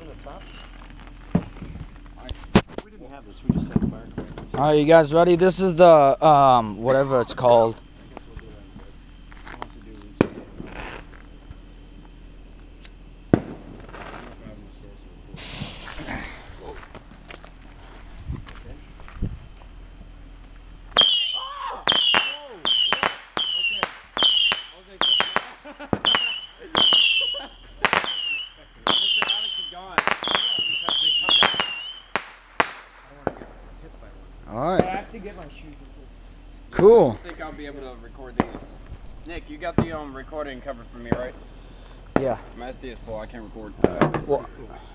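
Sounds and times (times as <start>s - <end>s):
firework sharp bangs: 10.2s - 11.2s, 13.3s - 14.4s, 21.0s - 33.7s
firework hiss: 15.3s - 16.8s.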